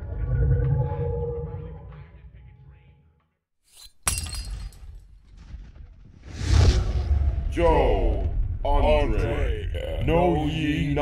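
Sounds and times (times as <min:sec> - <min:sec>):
ceramic smashing on hard floor: 0:03.8 - 0:05.0.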